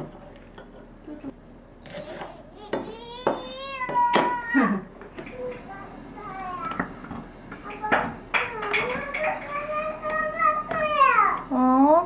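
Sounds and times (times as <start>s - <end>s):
child vocalizing: 1.9s - 5.6s.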